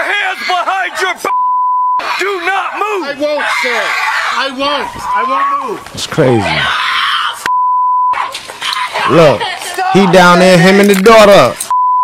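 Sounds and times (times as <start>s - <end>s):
censor bleep: 1.3s - 2.0s, 7.5s - 8.2s, 11.7s - 12.0s.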